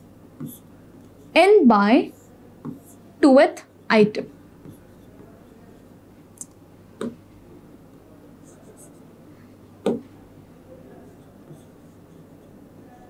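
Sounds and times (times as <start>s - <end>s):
stylus scratching on glass: 4.6s - 6.0s, 8.4s - 9.1s, 10.8s - 13.0s.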